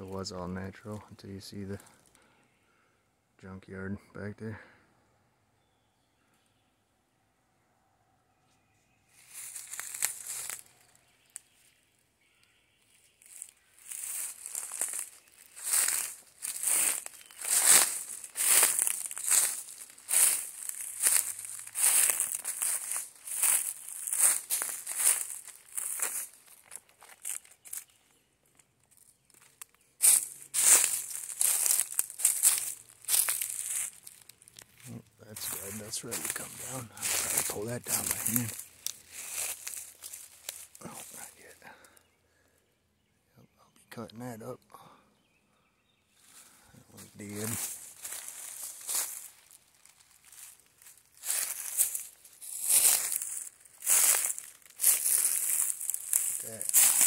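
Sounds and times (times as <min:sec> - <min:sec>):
footsteps crunching dry leaves: 0:09.1 - 0:11.8, 0:12.9 - 0:41.6, 0:46.2 - 0:57.0.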